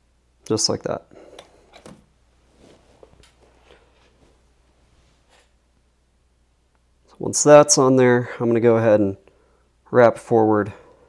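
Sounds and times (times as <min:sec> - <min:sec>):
soft clicks and rustles: 0:01.3 - 0:05.6.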